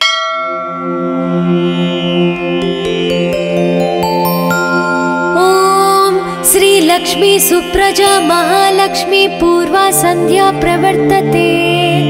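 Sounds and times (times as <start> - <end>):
bell ringing: 0.0 - 7.6
devotional instrumental music: 0.0 - 12.0.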